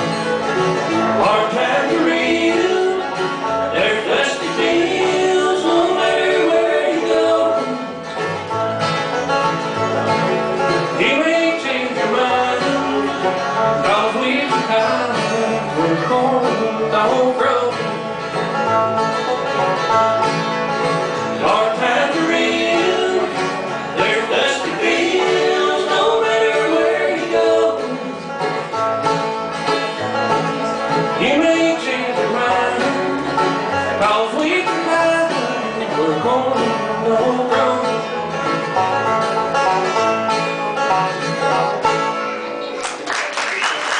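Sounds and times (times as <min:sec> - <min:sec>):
acoustic guitar strumming: 0:00.0 - 0:43.1
banjo picking: 0:00.0 - 0:43.1
bluegrass band playing: 0:00.0 - 0:43.9.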